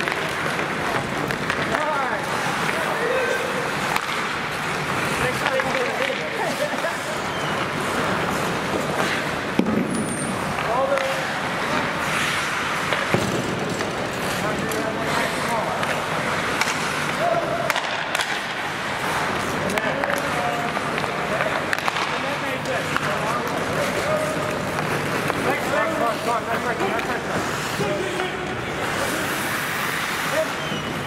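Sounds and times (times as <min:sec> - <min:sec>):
hockey stick clacks: 0:00.0 - 0:31.0
skates scraping on ice: 0:00.0 - 0:31.0.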